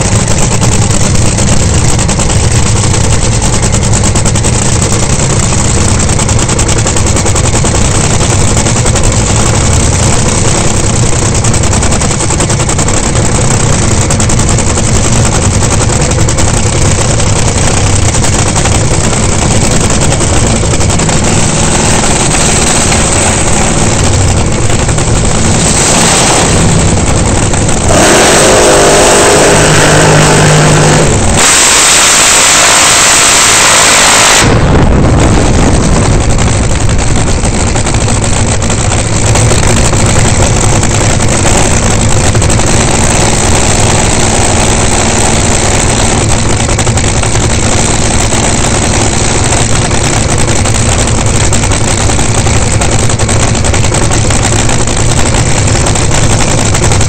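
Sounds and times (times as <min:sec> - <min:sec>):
dragster engine revving: 0:00.0 - 0:57.0.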